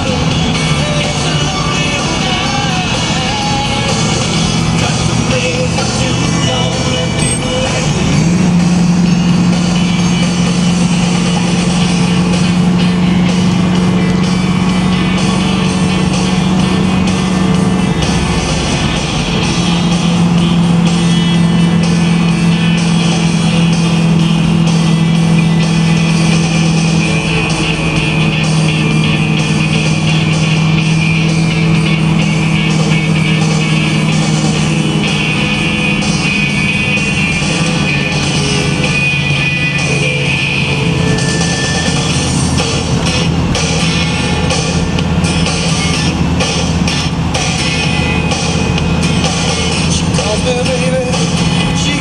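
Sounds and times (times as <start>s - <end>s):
car engine cruising: 0.0s - 52.0s
music: 0.0s - 52.0s.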